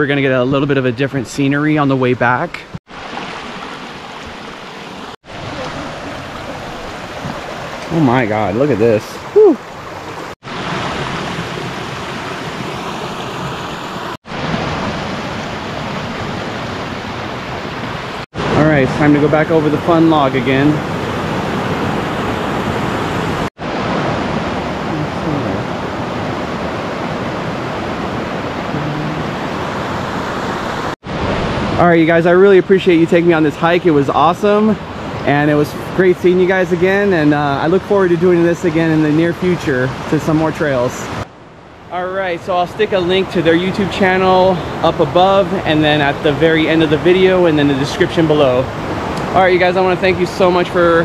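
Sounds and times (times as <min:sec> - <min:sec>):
river rushing over rocks: 0:02.9 - 0:08.4
creek running over rocks: 0:02.9 - 0:16.8.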